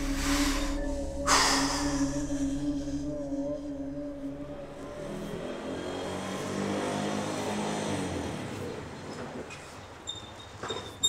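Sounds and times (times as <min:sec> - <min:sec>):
vehicle engine running: 0:00.0 - 0:08.8.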